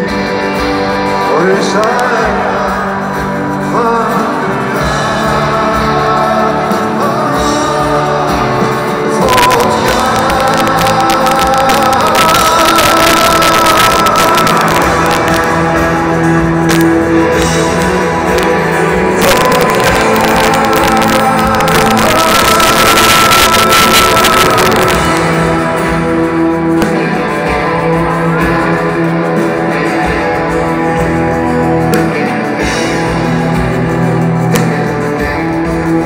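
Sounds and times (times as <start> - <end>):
drums: 0.0 - 36.0
strummed acoustic guitars: 0.0 - 36.0.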